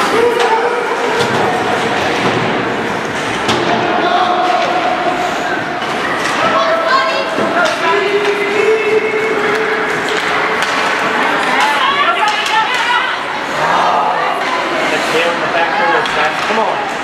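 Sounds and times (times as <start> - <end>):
spectators' voices: 0.0 - 17.0.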